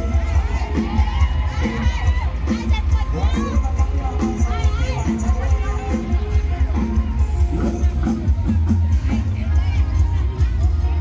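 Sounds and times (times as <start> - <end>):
crowd shouting and cheering: 0.0 - 11.0
party music with heavy bass: 0.0 - 11.0.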